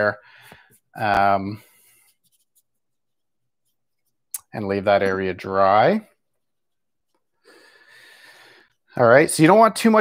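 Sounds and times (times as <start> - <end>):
person breathing in: 0.2 - 0.8, 7.4 - 8.8.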